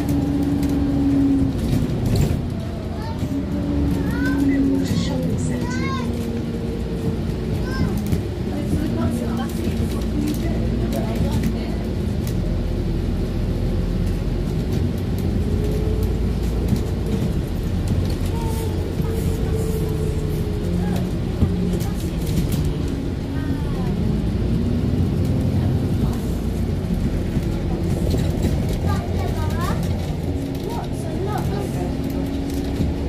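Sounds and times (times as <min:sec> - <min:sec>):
bus engine drone: 0:00.0 - 0:33.0.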